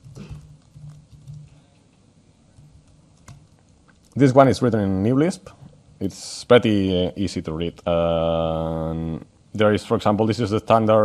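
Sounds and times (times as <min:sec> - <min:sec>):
typing on laptop keyboard: 0:00.0 - 0:01.7, 0:02.5 - 0:04.2.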